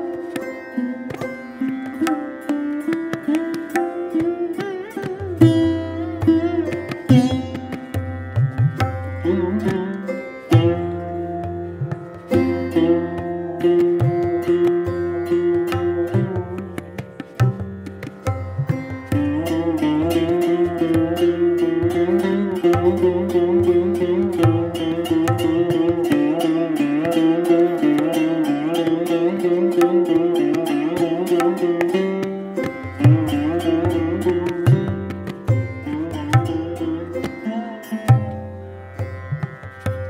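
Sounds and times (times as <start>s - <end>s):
sarod plucked notes: 0.0s - 40.0s
tabla strokes: 0.0s - 40.0s.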